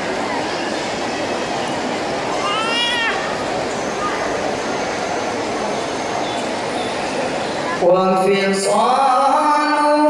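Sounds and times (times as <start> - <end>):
murmur of large hall: 0.0 - 10.0.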